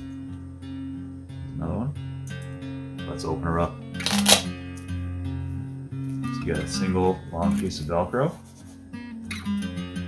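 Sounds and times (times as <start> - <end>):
acoustic guitar music: 0.0 - 10.0
velcro ripping open: 4.0 - 4.5.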